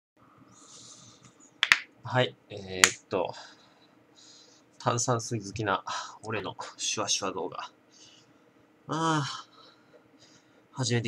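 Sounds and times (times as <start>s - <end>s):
sharp loud snap: 1.6s - 1.9s.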